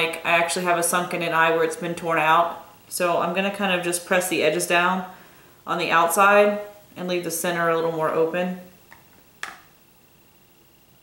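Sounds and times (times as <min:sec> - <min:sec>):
faint high hum: 0:00.0 - 0:11.0.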